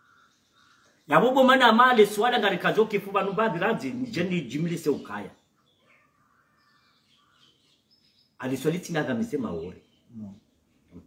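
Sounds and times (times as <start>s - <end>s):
distant bird chirps: 0.0s - 11.0s.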